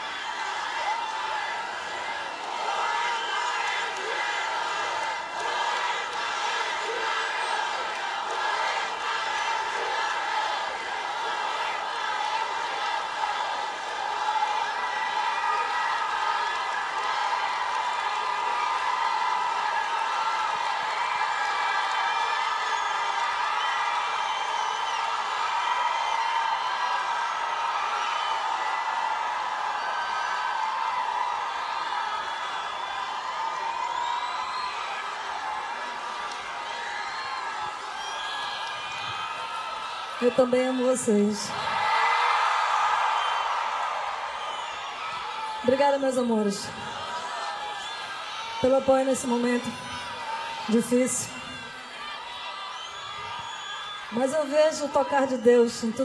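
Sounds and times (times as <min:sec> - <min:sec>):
crowd cheering and chanting: 0:00.0 - 0:56.0
whoops: 0:18.5 - 0:40.2, 0:49.6 - 0:54.9.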